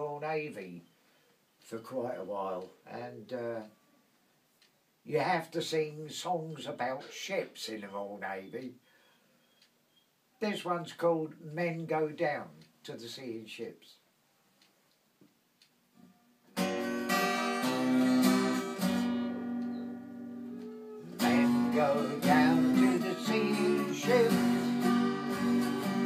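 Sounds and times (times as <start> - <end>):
twelve-string acoustic guitar strumming: 16.5 - 26.0.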